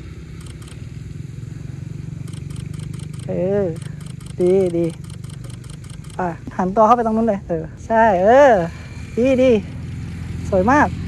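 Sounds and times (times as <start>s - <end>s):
steady low hum: 0.0s - 11.0s
faint rapid clicking: 0.4s - 0.8s, 2.3s - 6.2s
person speaking: 3.2s - 8.7s.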